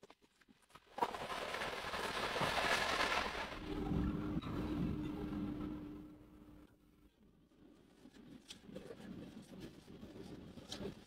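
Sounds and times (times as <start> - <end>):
faint steady hum: 3.5 - 10.9.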